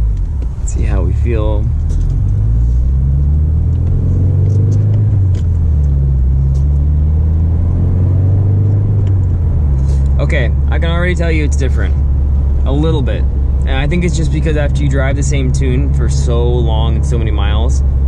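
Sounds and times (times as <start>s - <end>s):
car engine pulling away: 0.0s - 18.0s.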